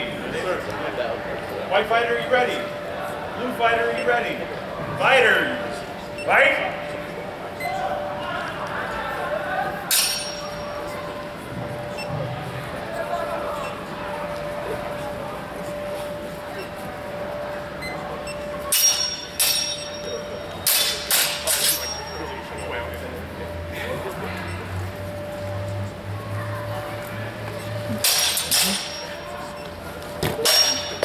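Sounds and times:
swords clashing: 0:09.9 - 0:10.4, 0:20.6 - 0:22.0, 0:28.0 - 0:29.1, 0:30.4 - 0:31.0.

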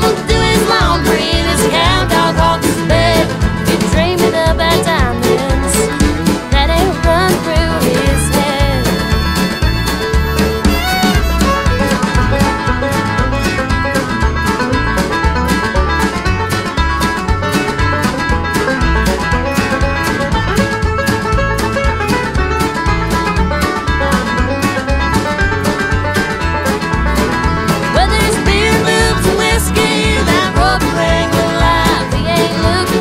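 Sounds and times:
plucked strings melody: 0:00.0 - 0:33.0
steady drum beat: 0:00.0 - 0:33.0.

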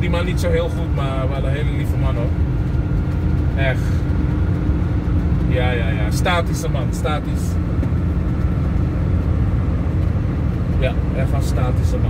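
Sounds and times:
car interior engine and tyre rumble: 0:00.0 - 0:12.0.

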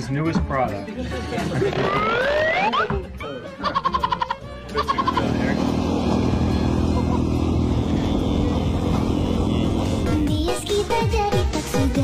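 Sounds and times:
motorcycle engine running: 0:04.7 - 0:11.1.

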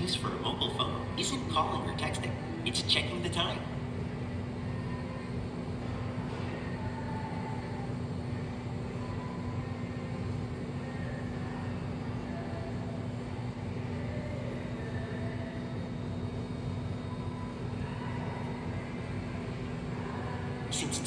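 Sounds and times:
machine hum and rumble: 0:00.0 - 0:21.0.

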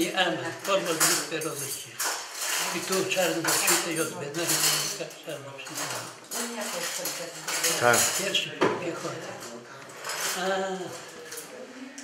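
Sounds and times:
glassware and dishes clinking: 0:00.0 - 0:11.1
person speaking in background: 0:07.7 - 0:08.2.

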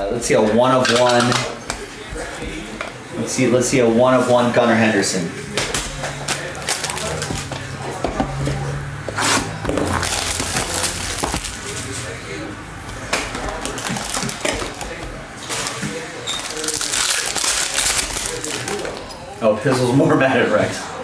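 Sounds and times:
foil wrapper crinkling: 0:06.2 - 0:07.5, 0:09.8 - 0:12.2, 0:13.0 - 0:19.0.

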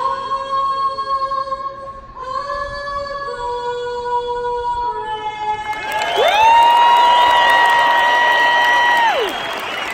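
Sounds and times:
crowd cheering and applauding: 0:05.7 - 0:09.9.

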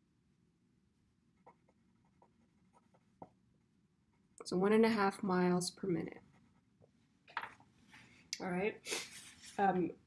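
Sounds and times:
pen scratching on paper: 0:01.4 - 0:03.2.

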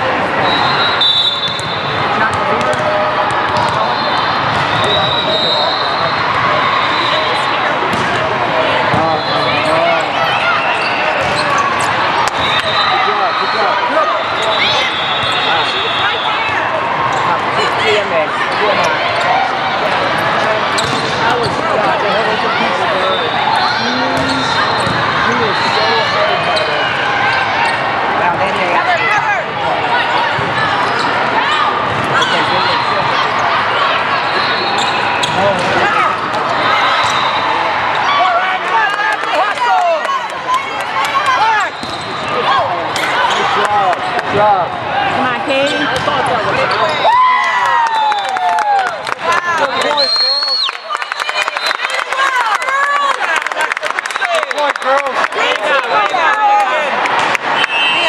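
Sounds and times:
volleyball slaps: 0:07.9 - 0:08.2
din of indistinct voices: 0:12.8 - 0:36.8
sneakers squeaking on court: 0:20.7 - 0:21.6, 0:24.1 - 0:25.7, 0:41.6 - 0:42.3.

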